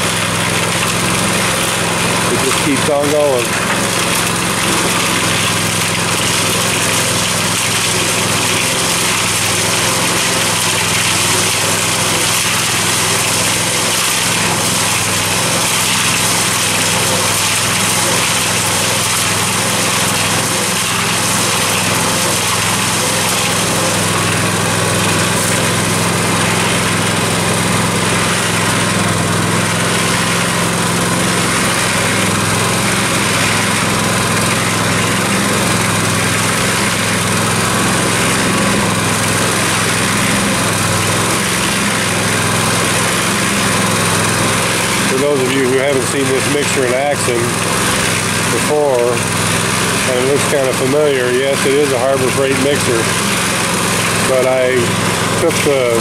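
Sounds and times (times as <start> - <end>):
cement mixer drum turning: 0.0 - 56.0
small gasoline engine running: 0.0 - 56.0.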